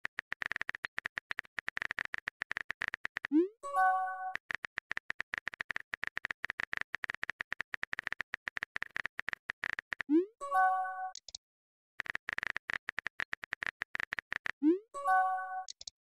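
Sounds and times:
keyboard typing clicks: 0.0s - 10.2s, 10.8s - 11.4s, 12.0s - 15.9s.

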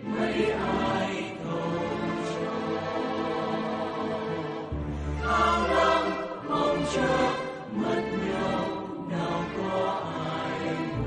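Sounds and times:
choir-like voices: 0.0s - 11.0s.

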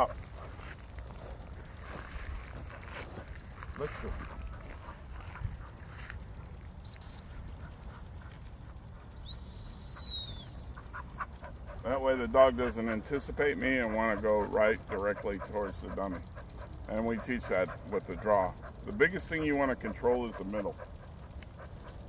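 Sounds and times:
dog training whistle blasts: 6.8s - 7.6s, 9.3s - 10.6s.

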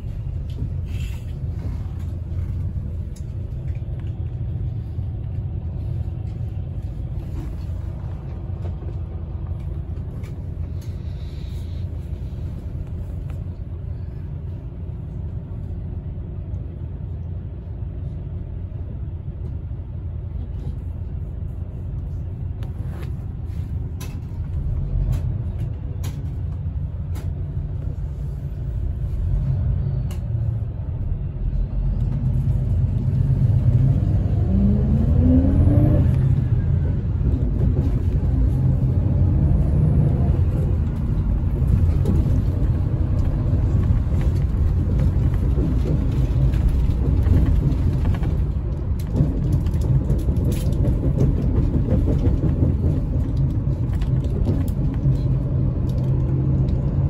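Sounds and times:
bus engine revving: 0.0s - 57.0s
bus engine rumble: 0.0s - 57.0s.

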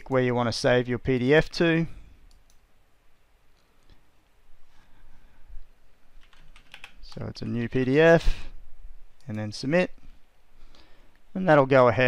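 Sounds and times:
computer keyboard typing: 6.2s - 7.1s.

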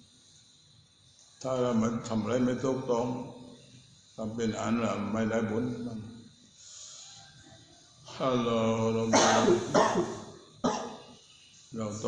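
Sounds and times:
man clearing his throat: 9.0s - 11.1s
man coughing: 9.0s - 11.1s.

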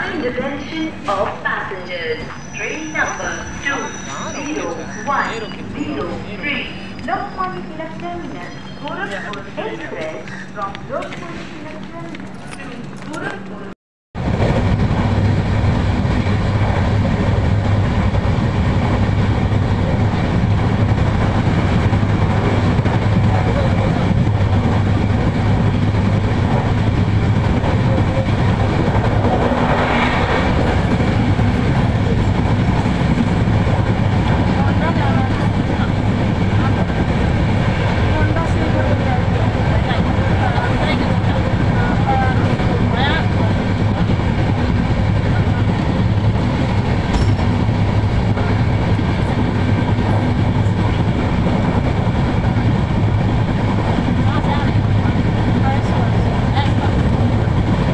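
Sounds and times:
train wheels rumbling on rails: 0.0s - 57.9s.

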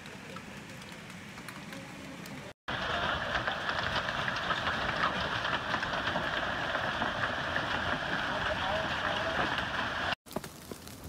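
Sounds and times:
hail pattering on ground: 2.7s - 11.0s.

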